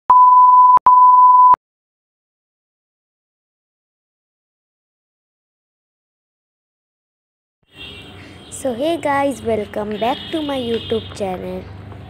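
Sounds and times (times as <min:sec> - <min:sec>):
high-pitched test tone beeps: 0:00.1 - 0:01.6.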